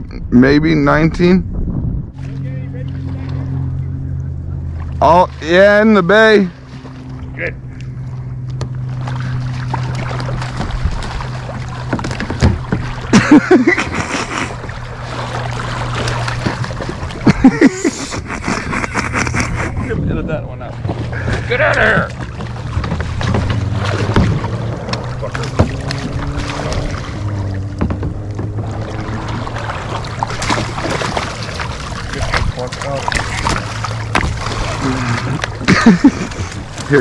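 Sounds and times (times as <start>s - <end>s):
water splashing and sloshing: 1.1s - 37.0s
pelicans flapping and thrashing: 8.9s - 19.9s, 20.8s - 37.0s
man laughing: 13.1s - 14.6s, 17.2s - 20.2s, 34.8s - 37.0s
man exclaiming: 21.4s - 22.1s.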